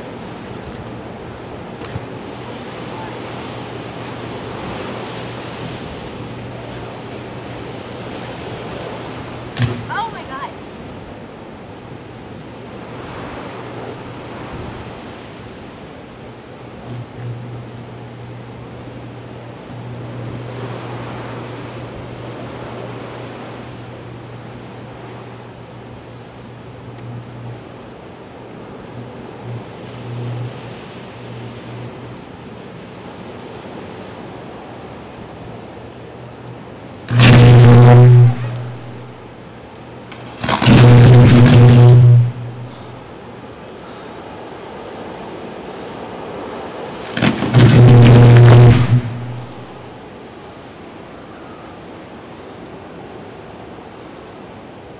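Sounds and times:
low electrical buzz: 0:00.0 - 0:54.9
loud buzzing arc bursts: 0:37.1 - 0:39.2, 0:40.2 - 0:43.0, 0:47.2 - 0:49.8.

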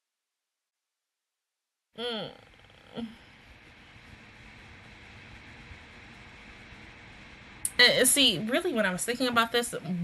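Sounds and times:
person humming: 0:02.0 - 0:03.3.

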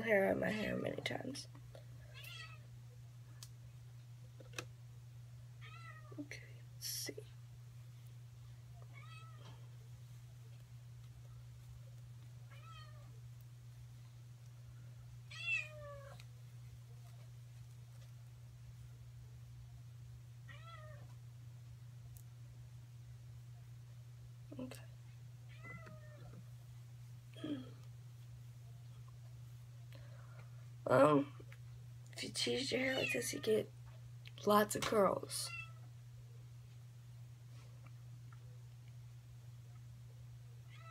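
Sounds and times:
steady low hum: 0:00.0 - 0:40.9
cat meowing: 0:08.9 - 0:09.5, 0:12.5 - 0:13.1, 0:15.3 - 0:16.2, 0:20.5 - 0:21.0, 0:40.7 - 0:40.9.

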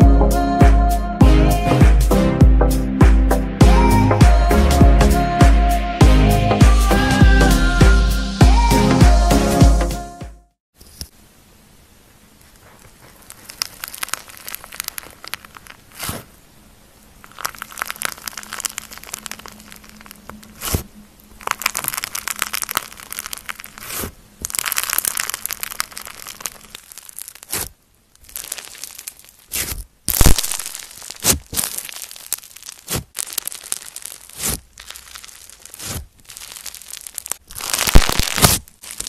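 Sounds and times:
slime beads crackling: 0:12.4 - 0:16.4, 0:17.0 - 0:39.0
slime popping: 0:12.6 - 0:16.3, 0:17.2 - 0:39.0.

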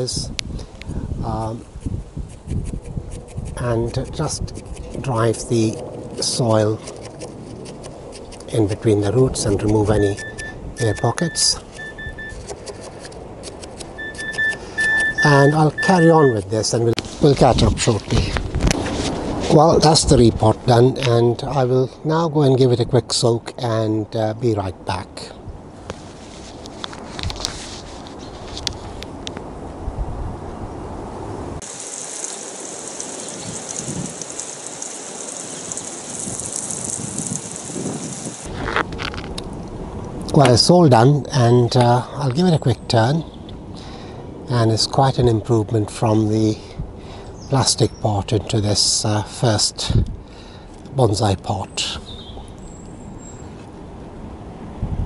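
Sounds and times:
water spraying onto soil: 0:31.6 - 0:38.5.

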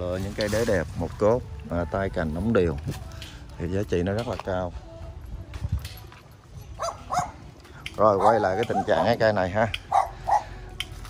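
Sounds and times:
dog yipping: 0:06.8 - 0:07.4, 0:08.2 - 0:09.2, 0:09.9 - 0:10.5.

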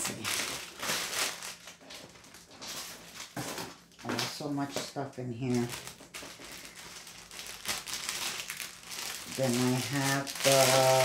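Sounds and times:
plastic packaging rustling: 0:00.0 - 0:11.0.

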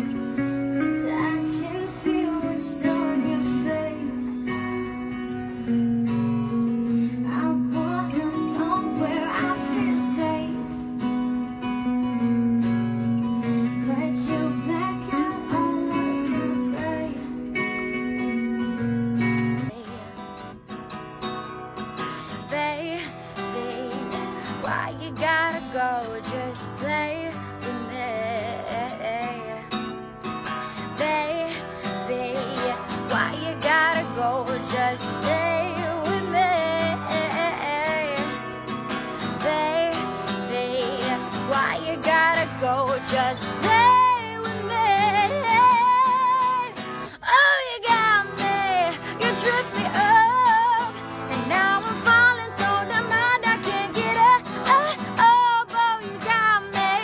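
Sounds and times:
acoustic guitar: 0:00.0 - 0:57.0
woman singing: 0:00.0 - 0:57.0.

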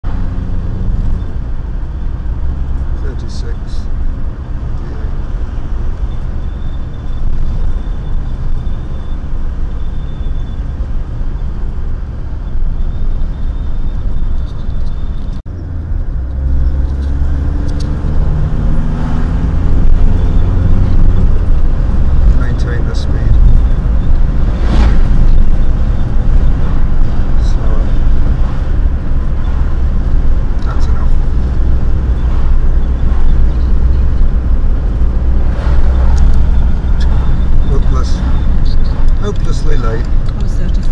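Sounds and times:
car engine and road noise: 0:00.0 - 0:40.9
passing vehicle rush: 0:00.0 - 0:40.9.

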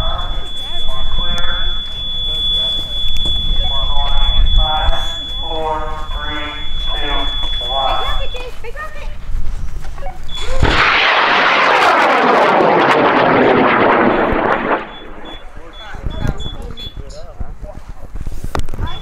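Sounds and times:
steady high tone: 0:00.0 - 0:08.3
rocket motor roaring: 0:10.3 - 0:15.8.

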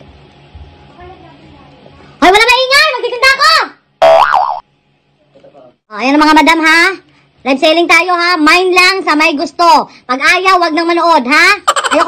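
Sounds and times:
cartoon boing sound effect: 0:04.0 - 0:04.6.

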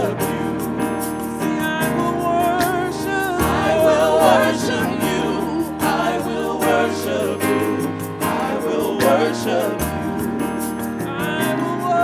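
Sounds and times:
band playing a steady beat: 0:00.0 - 0:12.0
gospel vocal group singing: 0:00.0 - 0:12.0.

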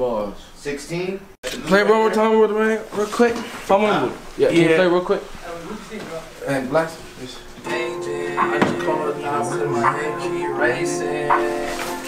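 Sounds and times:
music over studio speakers: 0:07.7 - 0:12.0.

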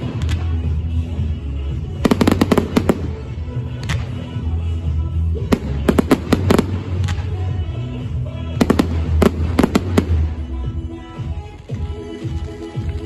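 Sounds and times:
fireworks bangs and crackles: 0:00.0 - 0:13.0
music playing: 0:00.0 - 0:13.0.

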